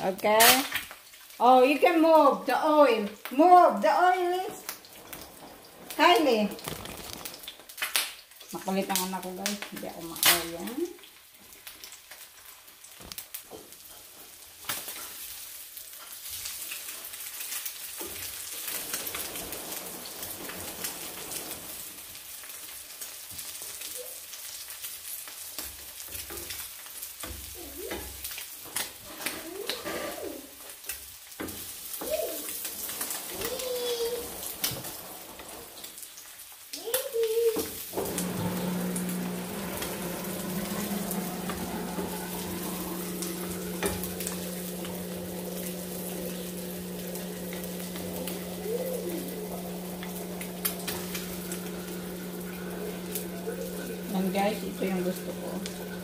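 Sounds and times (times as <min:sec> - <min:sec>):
eggs and meat sizzling in a pan: 0:00.0 - 0:56.0.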